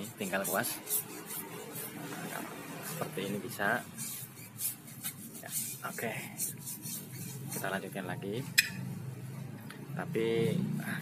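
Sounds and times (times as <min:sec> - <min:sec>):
brush swishing on tyre rubber: 0:00.0 - 0:08.6.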